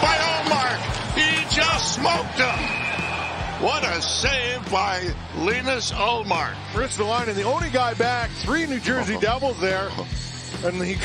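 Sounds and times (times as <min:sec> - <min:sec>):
broadcast voices: 0:00.0 - 0:02.8, 0:03.6 - 0:11.0
background music: 0:00.0 - 0:11.0.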